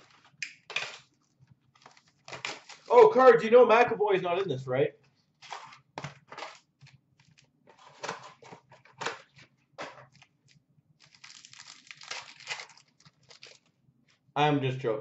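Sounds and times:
cards and wrappers rustling: 0.0s - 3.4s, 5.3s - 13.7s.

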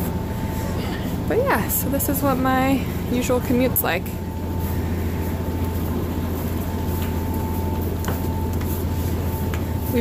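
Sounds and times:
ferry engines droning: 0.0s - 10.0s.

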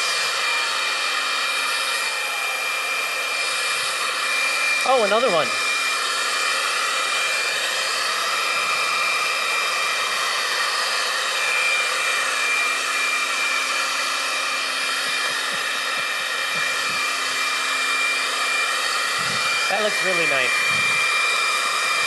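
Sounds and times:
leaf blower running: 0.0s - 22.0s.

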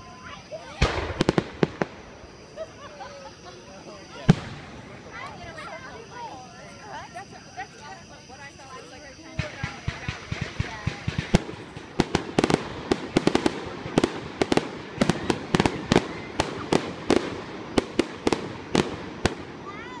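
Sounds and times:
fireworks bangs: 0.0s - 6.3s, 9.2s - 20.0s.

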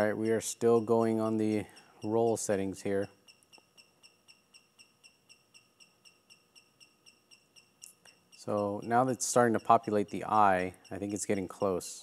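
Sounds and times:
faint high-pitched motor chirps: 0.0s - 12.0s.

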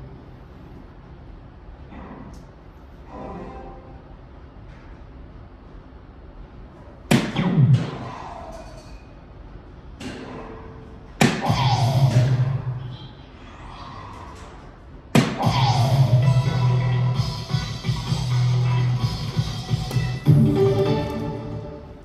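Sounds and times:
electronic musical fanfare: 15.6s - 22.0s.

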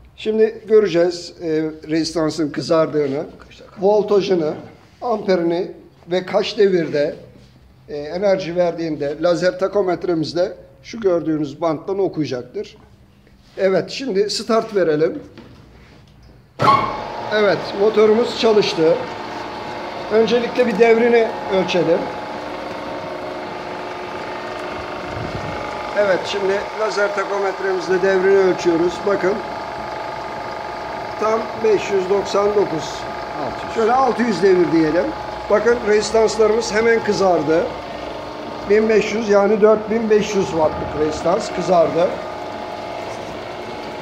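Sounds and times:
electric motor humming and whining: 16.6s - 44.0s.

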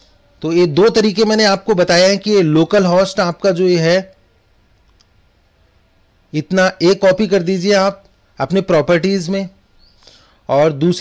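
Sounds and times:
room hiss: 0.0s - 11.0s
computer mouse click: 4.8s - 5.2s.

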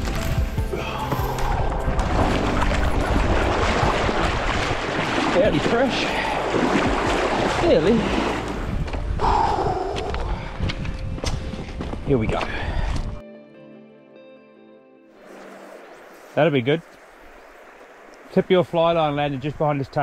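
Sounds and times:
water splashing: 0.0s - 9.0s, 15.2s - 20.0s
wind rumbling on microphone: 0.0s - 13.2s
footsteps crunching on stones: 10.0s - 13.1s.

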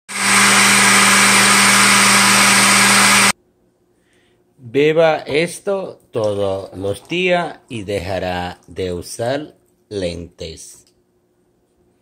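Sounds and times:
blender motor running: 0.1s - 3.4s.

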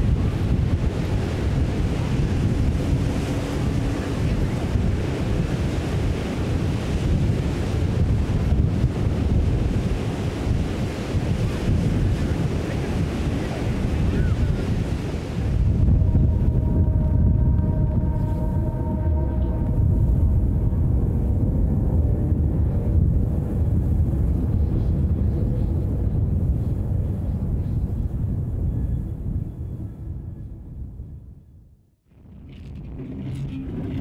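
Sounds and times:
surf on shore: 0.0s - 26.3s
wind buffeting microphone: 0.0s - 34.0s
faint steady tones: 15.0s - 28.2s.

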